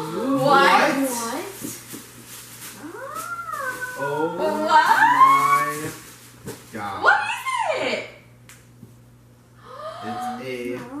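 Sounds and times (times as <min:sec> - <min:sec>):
dog whining: 0:02.8 - 0:05.9.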